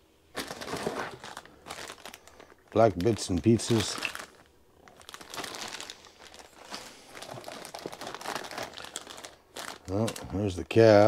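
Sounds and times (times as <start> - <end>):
plastic bags crinkling: 0.3 - 10.8.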